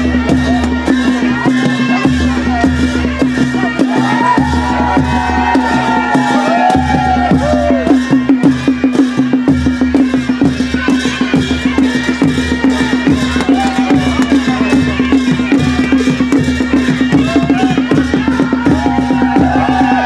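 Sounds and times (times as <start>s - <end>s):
fast percussion beat: 0.0s - 20.0s.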